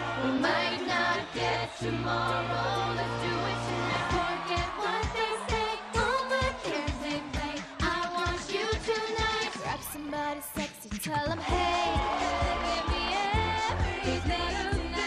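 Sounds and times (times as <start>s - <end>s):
lead female voice singing: 0.0s - 15.0s
sung backing harmonies: 0.0s - 15.0s
vocal percussion beat: 0.0s - 15.0s.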